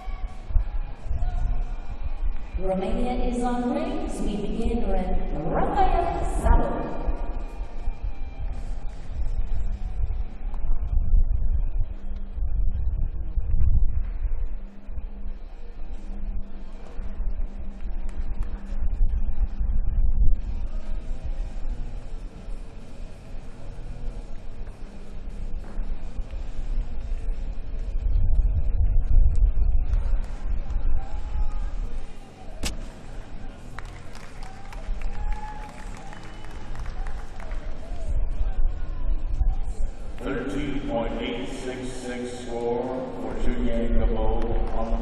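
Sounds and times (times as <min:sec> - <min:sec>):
arena background rumble: 0:00.0 - 0:45.0
faint hum: 0:00.0 - 0:45.0.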